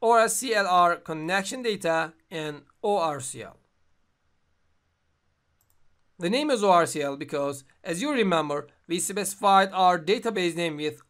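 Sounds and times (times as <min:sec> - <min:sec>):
computer mouse clicks: 0:05.6 - 0:06.1.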